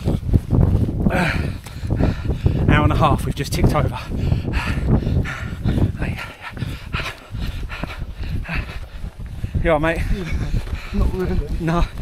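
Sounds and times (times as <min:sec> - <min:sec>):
man panting: 0:01.0 - 0:02.7, 0:03.8 - 0:12.0.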